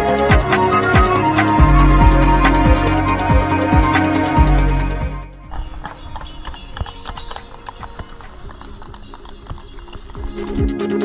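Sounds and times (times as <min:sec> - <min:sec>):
horse hooves on pavement: 0:05.4 - 0:10.8.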